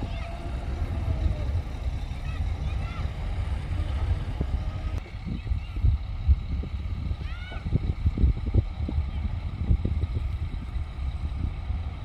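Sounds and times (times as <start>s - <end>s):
diesel machinery rumbling: 0.0s - 12.0s.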